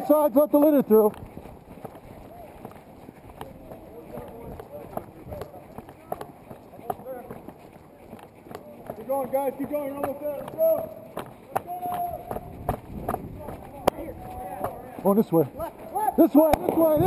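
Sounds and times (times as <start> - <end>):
boot footsteps on concrete: 0.0 - 17.0.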